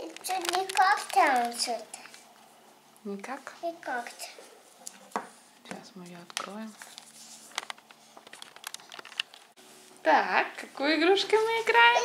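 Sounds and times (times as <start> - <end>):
plastic shrink-wrap crinkling: 0.0 - 2.4, 6.0 - 9.6.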